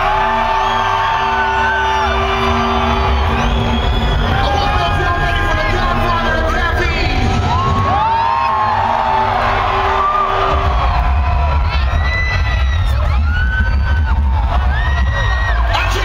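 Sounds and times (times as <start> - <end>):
crowd cheering and whooping: 0.0 - 16.0
heavy bass: 0.0 - 16.0
loud live concert music: 0.0 - 16.0.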